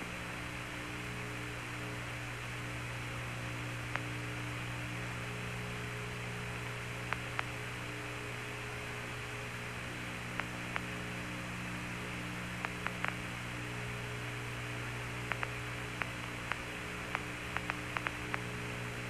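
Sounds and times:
radio hum and hiss: 0.0s - 19.0s
sharp radio clicks: 10.4s - 10.9s, 12.6s - 13.2s, 15.3s - 18.5s.

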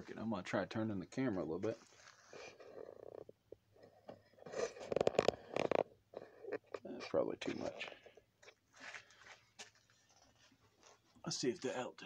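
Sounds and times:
camera handling rubbing and scraping: 1.7s - 9.0s, 9.6s - 11.1s.

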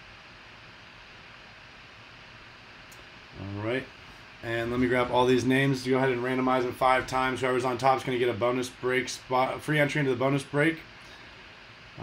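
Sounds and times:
faint microphone hiss: 0.0s - 12.0s.

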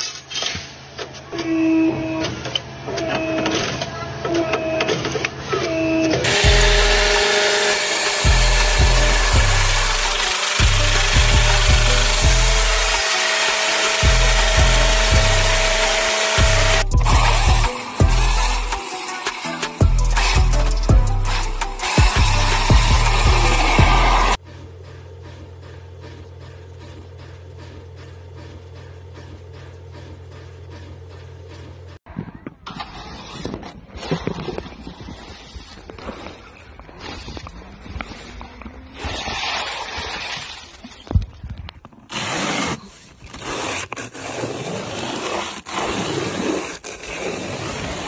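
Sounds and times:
motor whine: 6.2s - 24.4s
electronic music with bass: 6.3s - 24.5s.

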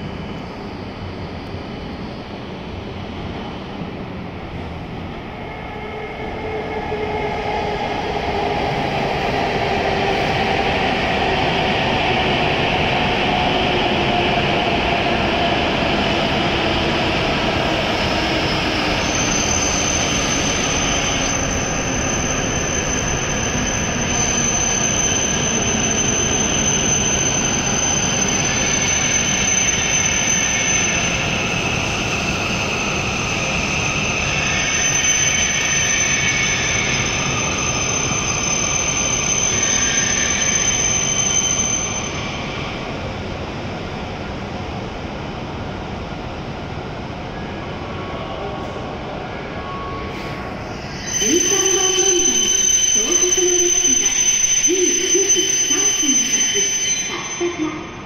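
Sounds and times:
train drive whine: 0.0s - 58.0s
high-pitched train squeal: 5.3s - 43.1s, 47.3s - 58.0s.

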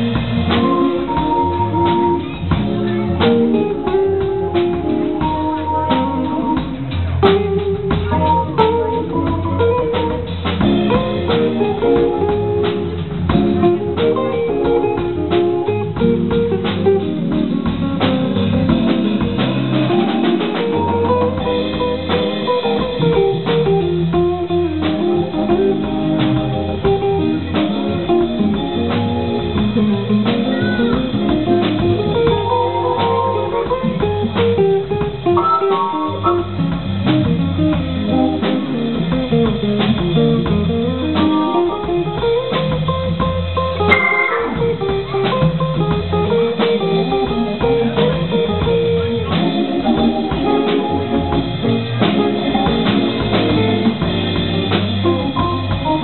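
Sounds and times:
drum kit: 0.0s - 56.0s
electric guitar: 0.0s - 56.0s
keyboard: 0.0s - 56.0s.

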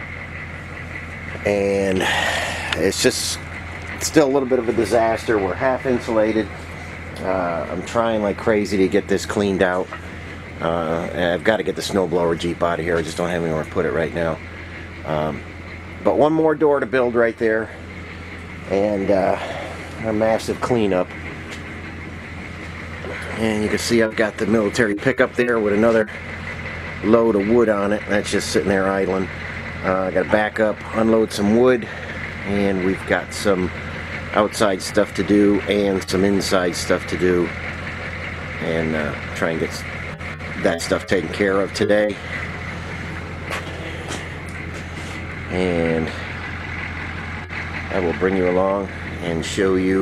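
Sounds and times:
truck engine idling: 0.0s - 50.0s
footsteps: 42.4s - 45.3s.

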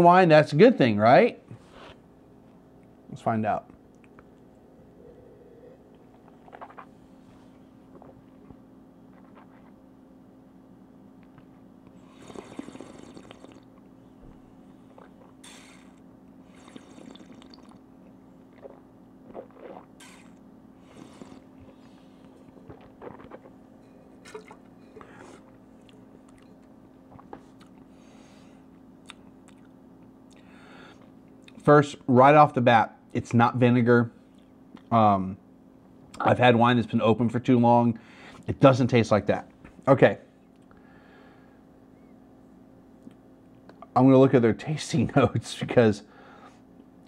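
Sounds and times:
steady hum: 0.0s - 47.0s
person breathing: 5.0s - 6.0s, 30.4s - 31.0s, 38.0s - 38.4s, 40.8s - 41.6s, 46.1s - 46.6s
slurping air through wine: 15.4s - 17.8s, 18.6s - 23.6s.

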